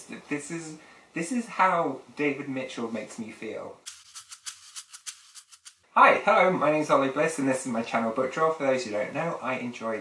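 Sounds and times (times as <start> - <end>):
rhythmic shaker: 3.8 - 5.8.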